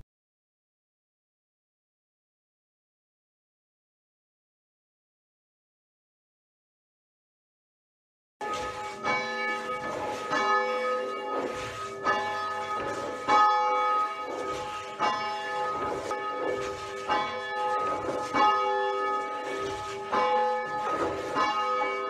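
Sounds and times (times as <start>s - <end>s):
church bell ringing: 8.4s - 22.0s.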